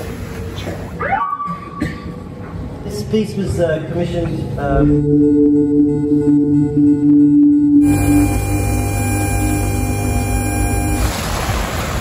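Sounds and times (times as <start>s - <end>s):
electronic tone swooping down: 4.9s - 11.2s.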